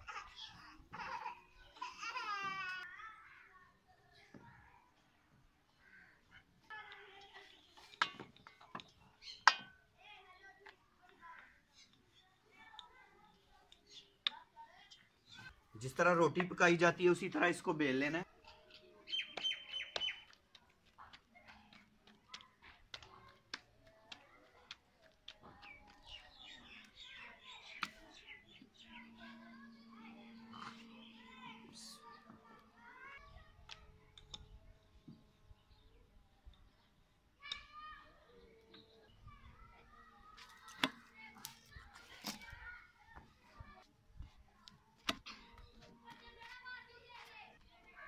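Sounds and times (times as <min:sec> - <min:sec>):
faint bird chirps: 0:18.8 - 0:20.3.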